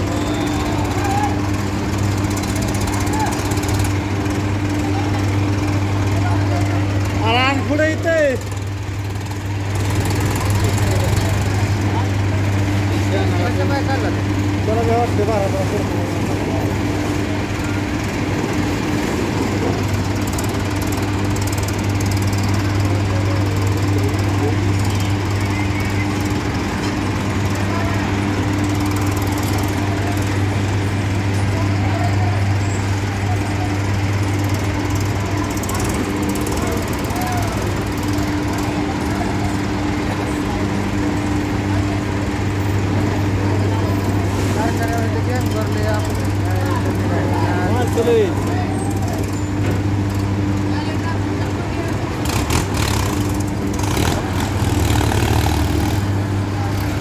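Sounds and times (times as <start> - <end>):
mill machinery humming and rumbling: 0.0 - 57.0.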